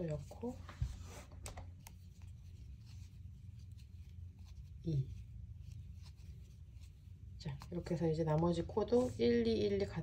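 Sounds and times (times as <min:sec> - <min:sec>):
crochet hook scratching yarn: 0:00.0 - 0:10.0
low steady hum: 0:00.0 - 0:10.0.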